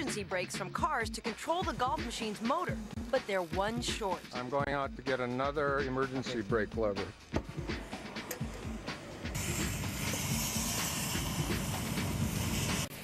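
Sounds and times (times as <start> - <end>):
loud steady hiss with rattling: 9.2 - 13.0.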